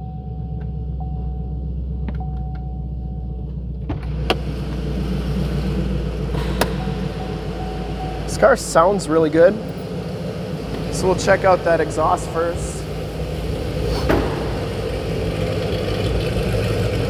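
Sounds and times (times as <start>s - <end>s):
electronic chime tone: 0.0s - 3.4s, 6.4s - 8.6s
car engine idling: 0.0s - 17.0s.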